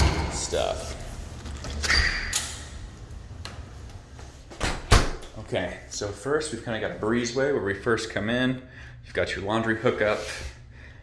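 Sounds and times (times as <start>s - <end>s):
door squeaking: 1.8s - 2.6s
door thumping shut: 4.6s - 5.2s.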